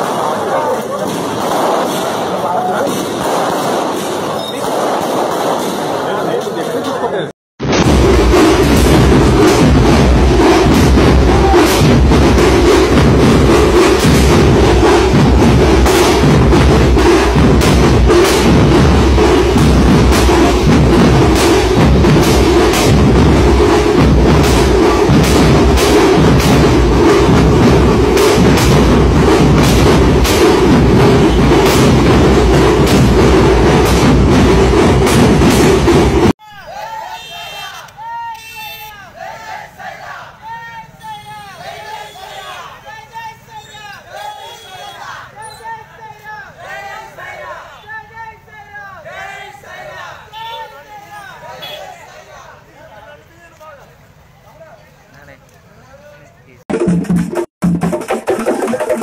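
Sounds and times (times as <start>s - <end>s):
fireworks crackling and banging: 0.0s - 36.4s
crowd noise: 0.0s - 57.0s
street noise: 0.0s - 59.0s
music with drums: 7.8s - 36.3s, 56.7s - 59.0s.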